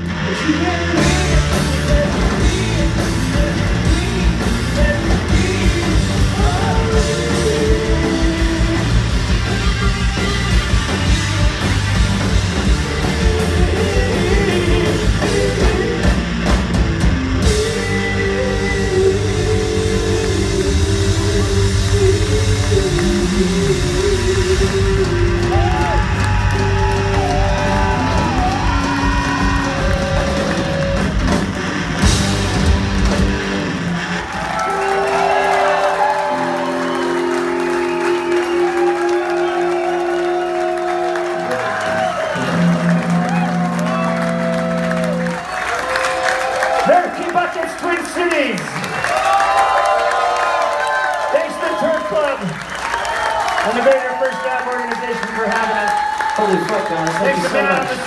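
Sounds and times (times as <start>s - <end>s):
rock band playing loudly: 0.0s - 58.0s.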